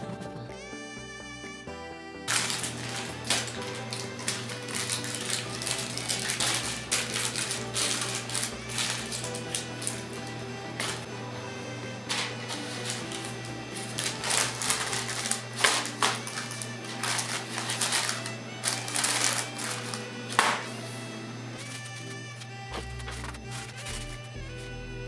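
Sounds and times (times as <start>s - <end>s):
background music: 0.0s - 25.0s
paper rustling and crinkling: 2.3s - 11.1s, 12.1s - 20.9s, 21.6s - 24.3s.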